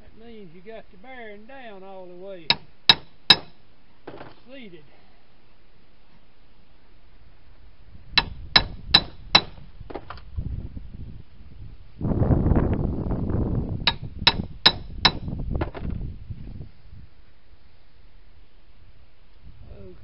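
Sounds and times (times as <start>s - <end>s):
low background noise: 0.0s - 20.0s
hammer striking steel with ringing clangs: 2.5s - 3.6s.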